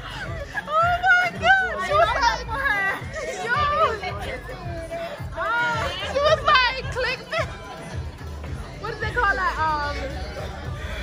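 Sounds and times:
background music with bass: 0:00.0 - 0:11.0
group talking and laughing: 0:00.0 - 0:11.0.

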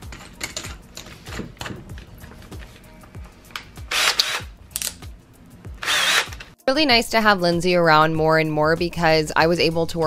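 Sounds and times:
background music with steady beat: 0:00.0 - 0:10.0
cordless drill bursts: 0:03.9 - 0:04.5, 0:05.8 - 0:06.4.

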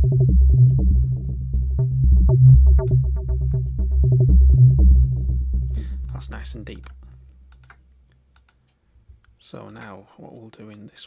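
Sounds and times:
pulsing synth bass notes: 0:00.0 - 0:07.6.

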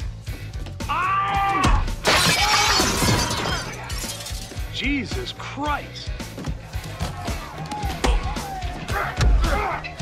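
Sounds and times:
glass shards falling: 0:02.0 - 0:04.5
window glass shattering: 0:02.0 - 0:04.5.

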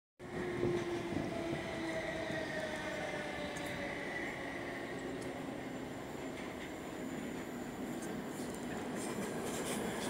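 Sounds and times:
electric train whine: 0:00.2 - 0:10.0
train rumble: 0:00.2 - 0:10.0.

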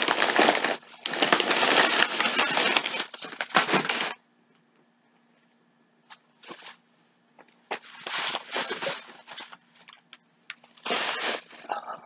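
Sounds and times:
plastic bags crinkling and rustling: 0:00.0 - 0:04.2, 0:06.1 - 0:06.8, 0:07.6 - 0:11.8.

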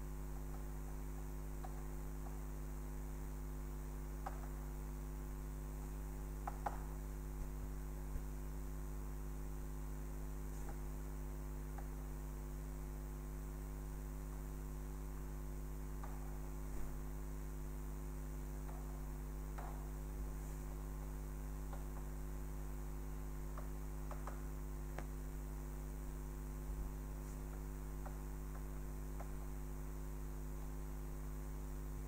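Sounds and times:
electrical mains hum: 0:00.0 - 0:32.0.

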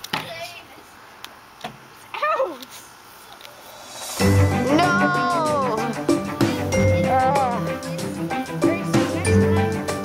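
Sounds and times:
child calling: 0:04.6 - 0:08.1.

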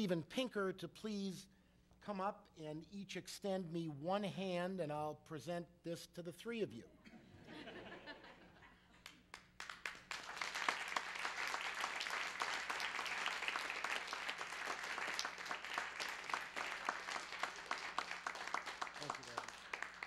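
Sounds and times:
audience applauding: 0:09.0 - 0:20.0.

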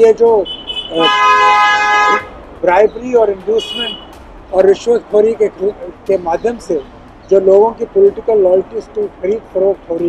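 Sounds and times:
vehicle horn blast: 0:00.4 - 0:02.3, 0:03.6 - 0:04.1.

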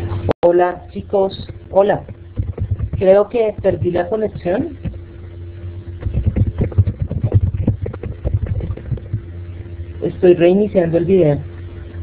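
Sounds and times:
steady low hum: 0:00.0 - 0:12.0
low knocks and thumps: 0:01.4 - 0:05.2, 0:05.9 - 0:09.7.

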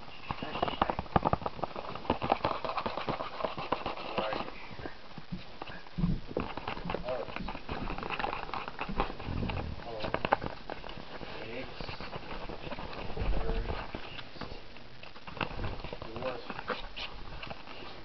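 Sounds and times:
animals scrabbling in cardboard box: 0:00.2 - 0:04.6, 0:05.4 - 0:18.0.

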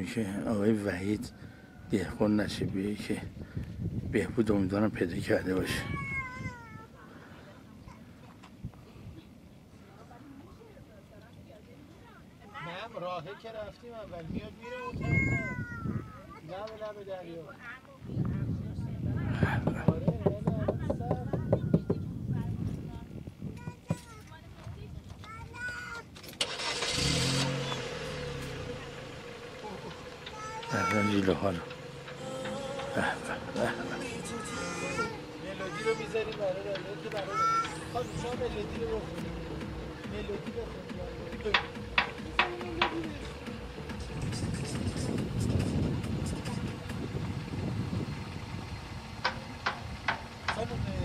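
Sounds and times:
car road and engine noise: 0:00.0 - 0:51.0
faint outdoor background: 0:00.0 - 0:51.0.

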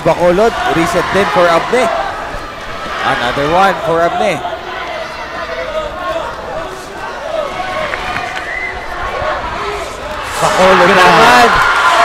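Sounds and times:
murmur of many voices: 0:00.0 - 0:12.0.

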